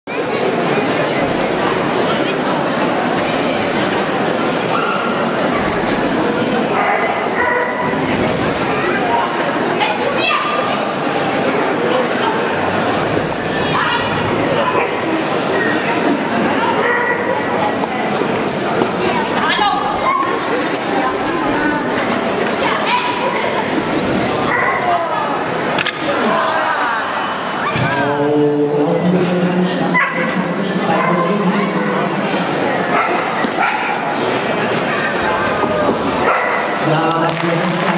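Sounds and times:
background chatter in a hall: 0.0s - 37.9s
people talking: 0.1s - 37.9s.

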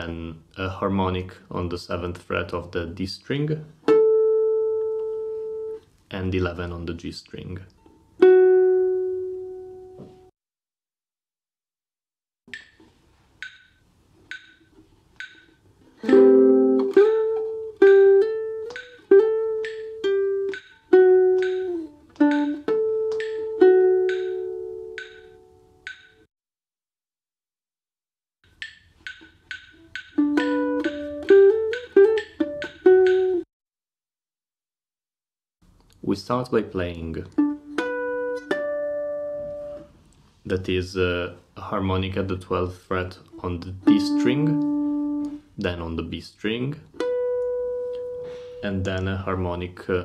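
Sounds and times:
metronome ticking: 12.5s - 26.3s, 28.5s - 33.4s, 43.8s - 45.4s, 47.0s - 49.2s
nylon-string guitar phrase: 42.0s - 47.4s, 48.3s - 50.0s.

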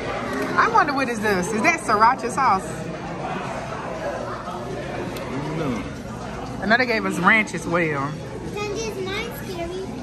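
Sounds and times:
background chatter: 0.0s - 10.0s
child speaking: 8.5s - 10.0s.

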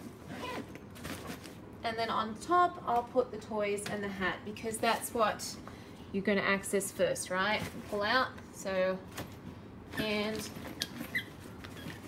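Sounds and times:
backpack zipper closing: 0.3s - 0.8s.

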